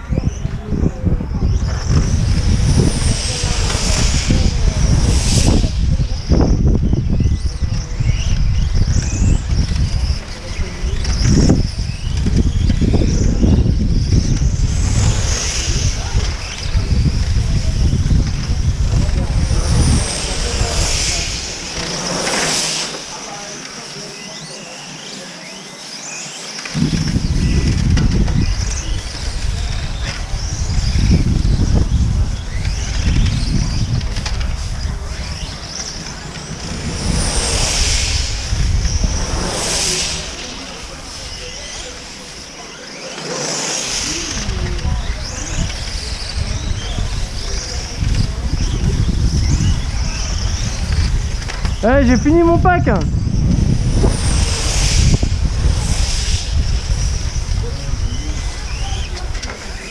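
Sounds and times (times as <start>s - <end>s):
wind rumble on microphone: 0.0s - 23.8s, 26.6s - 59.9s
electric rc cars whining: 0.0s - 59.9s.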